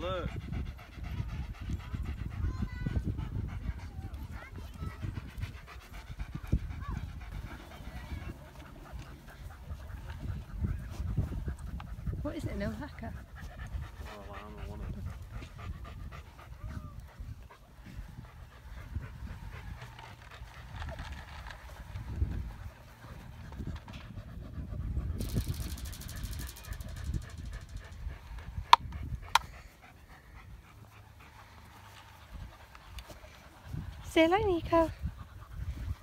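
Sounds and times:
dog panting: 0.0 - 36.0.

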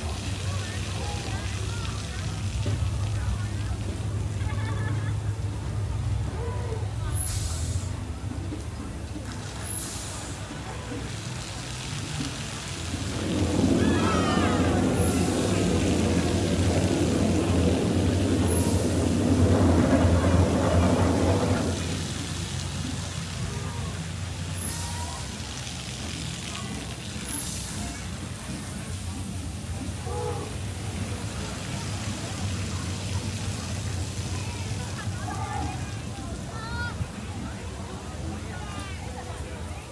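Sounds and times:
water gushing onto pavement: 0.0 - 39.9.

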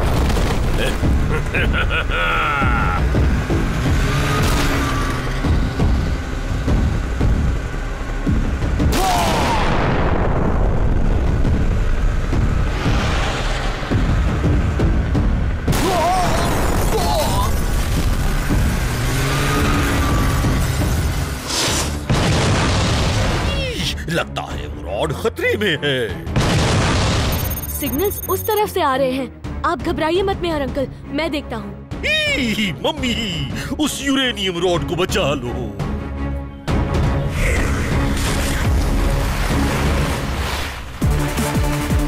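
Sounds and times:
background music: 0.0 - 42.0
cartoon vehicle engines: 0.8 - 9.5, 11.8 - 22.0, 27.3 - 28.7.

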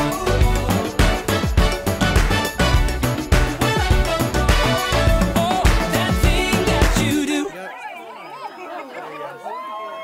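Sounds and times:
music: 0.0 - 7.5
people chattering: 4.3 - 10.0.

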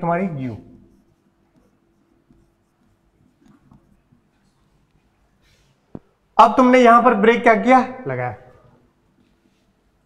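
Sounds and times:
stylus scratching on display: 0.0 - 6.0
faint steady hum: 0.0 - 10.0.

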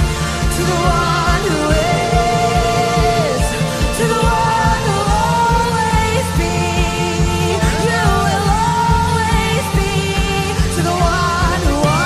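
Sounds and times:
kick drum beat: 0.0 - 12.0
worship band playing: 0.0 - 12.0.

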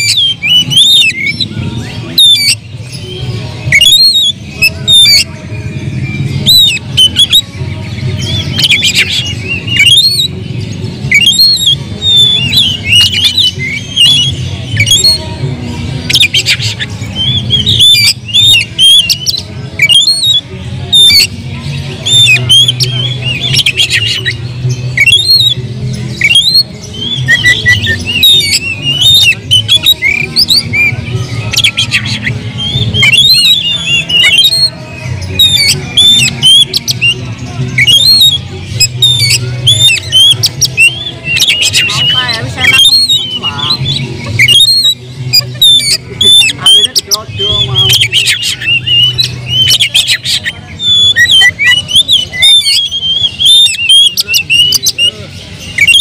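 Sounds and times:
songbird singing loudly: 0.0 - 56.0.

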